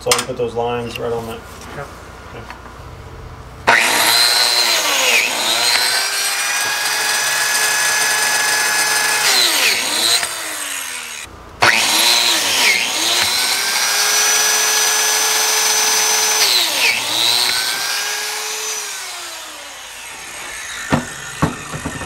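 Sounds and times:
plate joiner motor whining: 0:03.6 - 0:22.0.

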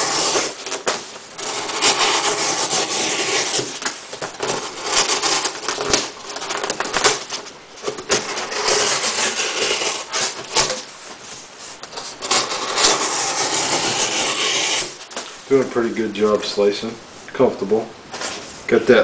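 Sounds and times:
knife slicing through cardboard: 0:00.0 - 0:07.4, 0:08.1 - 0:15.2.

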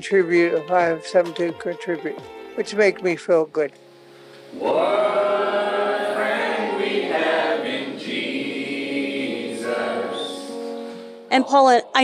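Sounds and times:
group of voices singing: 0:04.5 - 0:10.8.

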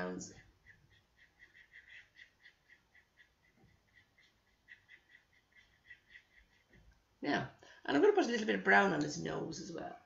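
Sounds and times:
small animal chirping: 0:00.4 - 0:06.8.

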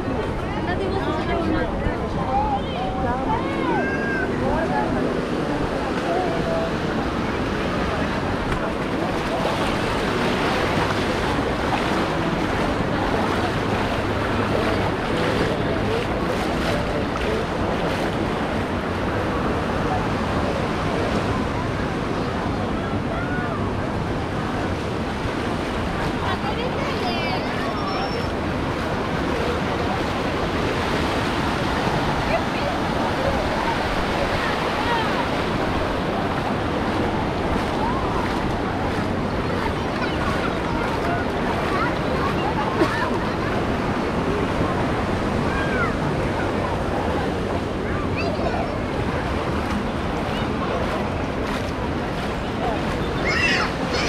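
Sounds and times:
beach crowd chatter and calls: 0:00.0 - 0:54.0
small waves washing ashore: 0:00.0 - 0:54.0.

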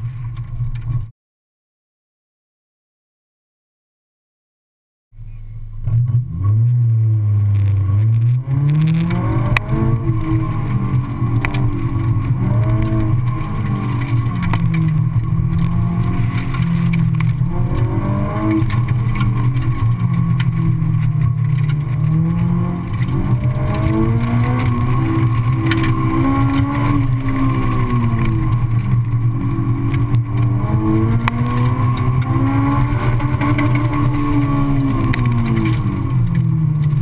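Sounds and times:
car engine revving: 0:05.6 - 0:37.0.

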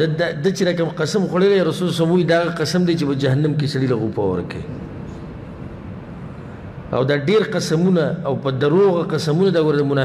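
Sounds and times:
man speaking: 0:00.0 - 0:04.7, 0:06.9 - 0:10.0
low rumble with hiss: 0:00.0 - 0:10.0.

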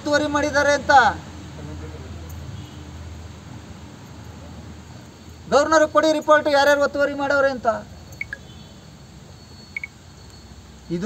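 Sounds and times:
open-air background noise: 0:00.0 - 0:11.0
quick high chirps: 0:08.0 - 0:10.6.

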